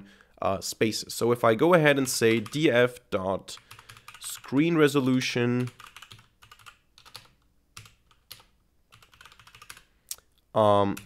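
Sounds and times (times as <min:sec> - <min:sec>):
computer keyboard typing: 0:02.0 - 0:02.6, 0:03.5 - 0:04.6, 0:05.6 - 0:09.9.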